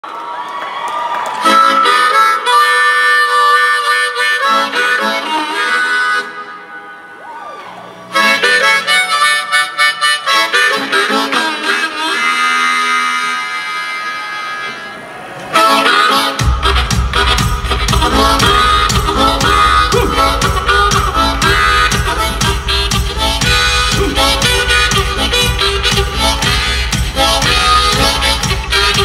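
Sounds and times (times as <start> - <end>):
concert crowd cheering: 0.0 - 1.9, 6.8 - 8.1, 14.0 - 17.0
harmonica playing loudly: 1.4 - 7.2, 7.9 - 29.0.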